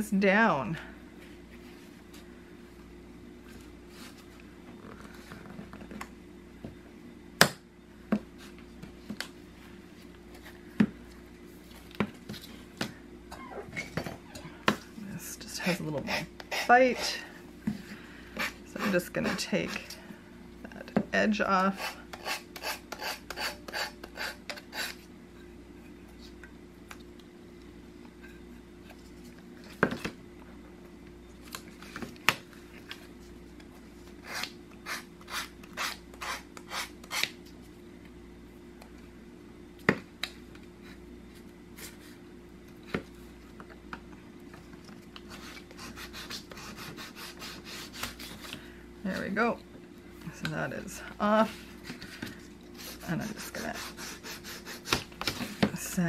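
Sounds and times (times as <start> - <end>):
sanding stick rasping on wood: 52.9 - 54.9.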